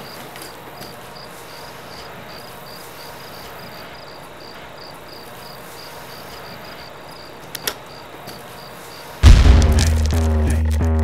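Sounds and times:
faint steady hiss: 0.0s - 10.5s
crickets chirping: 0.0s - 10.9s.

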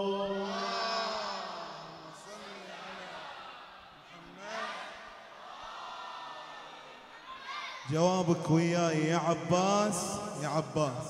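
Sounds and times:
devotional chanting: 0.0s - 5.1s, 7.8s - 11.0s.

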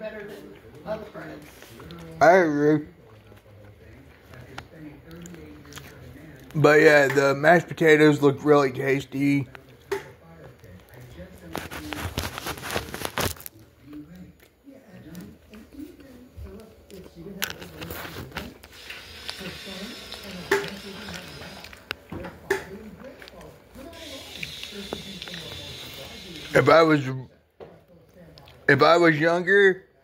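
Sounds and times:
faint background voices: 0.0s - 30.0s
man chewing food: 0.1s - 2.2s, 2.9s - 6.6s, 9.4s - 26.6s, 27.8s - 28.7s.

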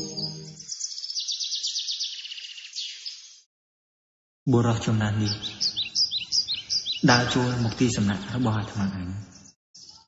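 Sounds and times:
ambient music with held tones: 0.0s - 0.7s
high chirping birdsong: 0.0s - 3.5s, 4.9s - 10.0s.

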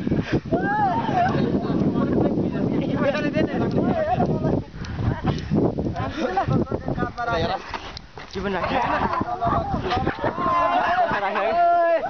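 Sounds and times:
young men shouting: 0.5s - 5.2s, 8.4s - 12.0s.

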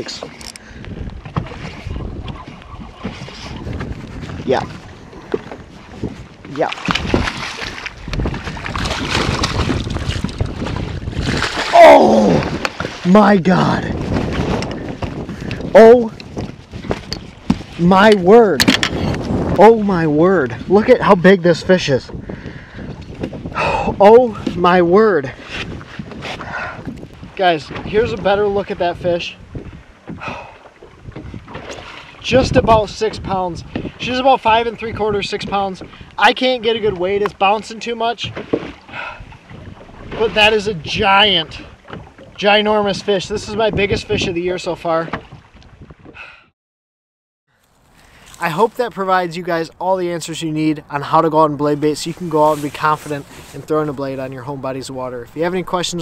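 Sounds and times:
wind buffeting microphone: 0.0s - 46.4s
water knocking against boat hull: 14.0s - 19.6s, 38.2s - 40.2s, 41.7s - 42.4s, 45.0s - 46.2s.

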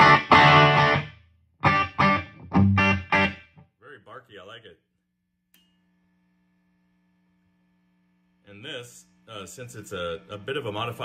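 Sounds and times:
faint electrical hum from amplifier: 0.0s - 11.0s.

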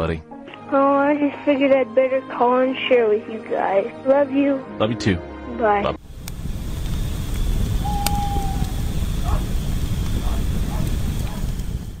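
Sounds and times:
deep steady rumble: 6.0s - 12.0s
faint wavering cries: 7.8s - 9.6s.

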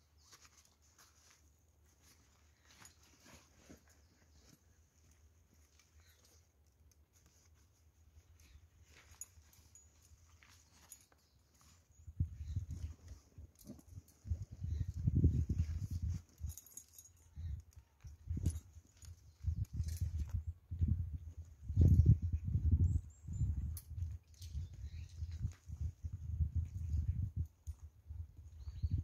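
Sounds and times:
wind buffeting microphone: 14.2s - 16.6s, 19.3s - 29.0s.

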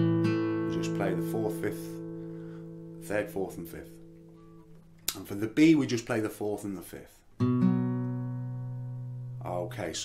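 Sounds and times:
acoustic guitar strings ringing: 0.0s - 5.1s.

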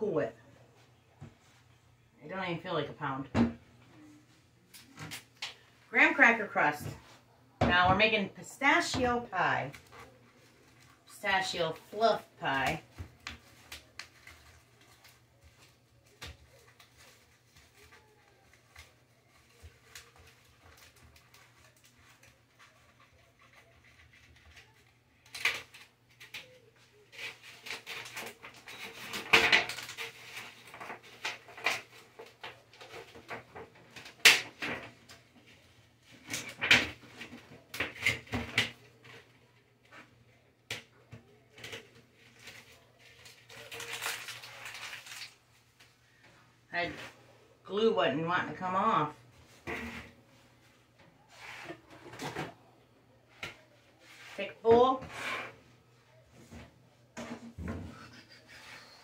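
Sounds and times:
rustling: 12.7s - 38.3s.

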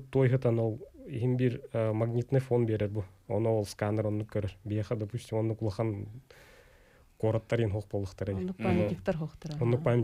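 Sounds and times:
man talking: 0.0s - 6.3s, 7.2s - 10.0s.

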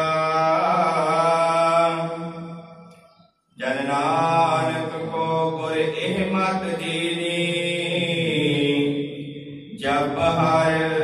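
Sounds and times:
man chanting a hymn: 0.0s - 2.5s, 3.6s - 11.0s.

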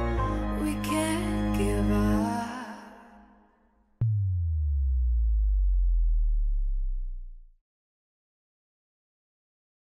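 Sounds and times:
deep synthesized bass tone: 4.0s - 7.6s.

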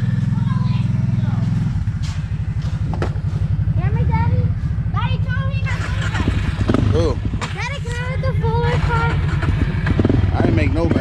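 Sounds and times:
quad bike engine idling: 0.0s - 11.0s.

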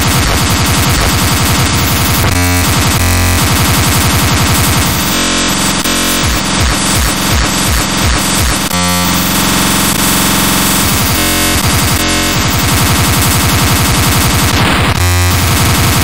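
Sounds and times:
fast kick drums: 0.0s - 5.2s, 6.2s - 8.8s
distorted speedcore music: 0.0s - 16.0s.

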